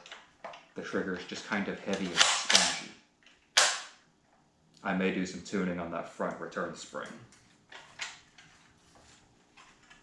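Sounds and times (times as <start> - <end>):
rifle shot crack: 3.6 - 4.0.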